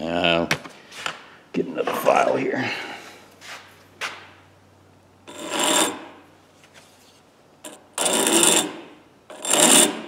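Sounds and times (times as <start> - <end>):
file scraping on steel: 5.3 - 6.2, 7.6 - 10.0.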